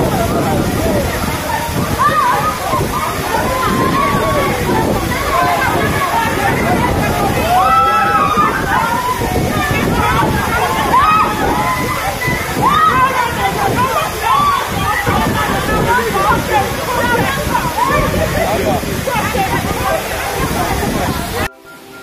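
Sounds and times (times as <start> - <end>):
waterfall pouring onto rock: 0.0 - 21.5
crowd calling out: 0.0 - 22.0.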